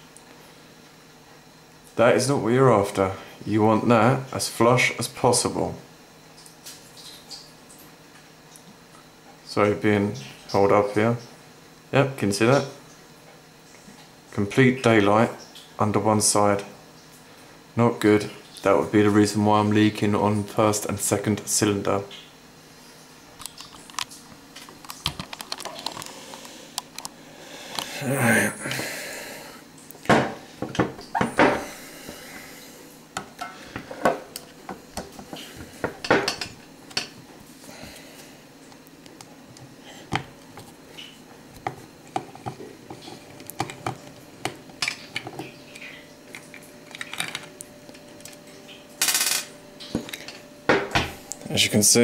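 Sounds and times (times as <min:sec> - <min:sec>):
small parts clicking and tapping: 0:41.6 - 0:48.4.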